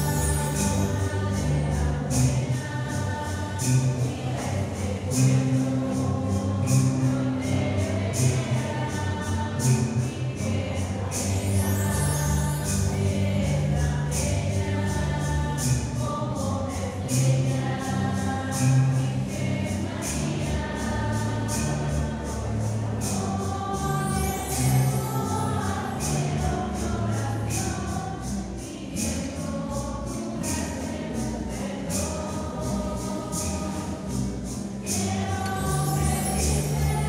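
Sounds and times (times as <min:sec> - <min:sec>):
bass line with steady beat: 0:00.0 - 0:37.0
shaken jingling percussion: 0:00.0 - 0:37.0
voices singing a hymn: 0:00.0 - 0:37.0.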